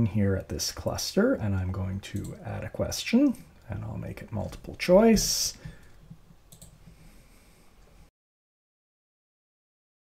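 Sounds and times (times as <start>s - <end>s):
low room hiss: 0.0s - 8.1s
computer mouse click: 6.1s - 6.8s.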